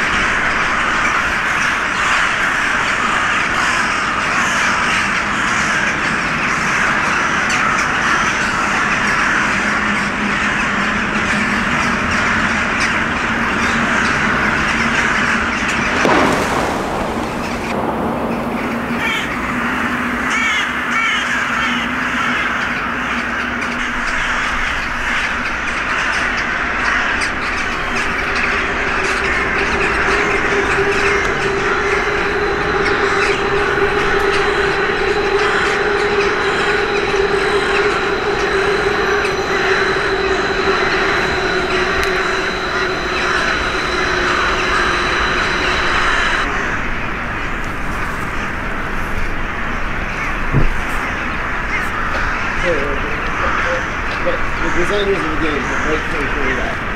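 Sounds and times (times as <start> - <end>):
crows cawing in chorus: 0.0 - 11.2
loud bang: 15.7 - 21.2, 27.2 - 46.7.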